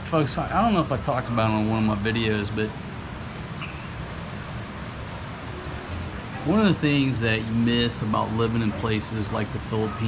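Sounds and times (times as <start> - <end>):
faint high chirp: 3.6 - 4.0.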